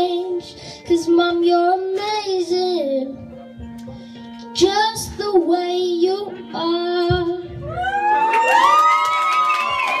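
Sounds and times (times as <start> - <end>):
boy singing into microphone: 0.0 - 7.6
karaoke backing track: 0.0 - 10.0.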